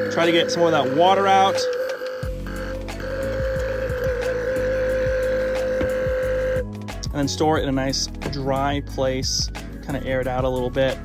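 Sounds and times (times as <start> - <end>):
electric water pump whining: 0.0 - 7.1
background music with low beat: 2.2 - 11.0.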